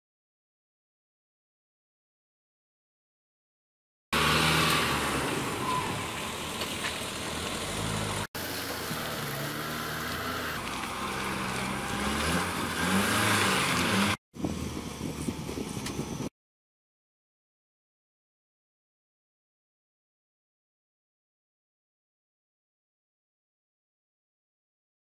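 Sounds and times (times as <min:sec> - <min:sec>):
pickup truck engine driving: 0:04.2 - 0:16.3.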